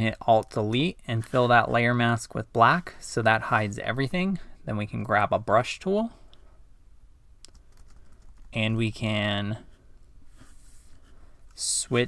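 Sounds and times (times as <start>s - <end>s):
computer keyboard key clicks: 7.4s - 8.5s.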